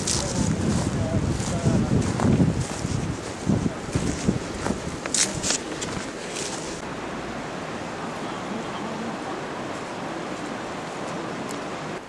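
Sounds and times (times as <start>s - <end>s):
faint voices: 0.0s - 6.8s, 7.8s - 12.0s
wind rumbling on microphone: 0.0s - 12.0s.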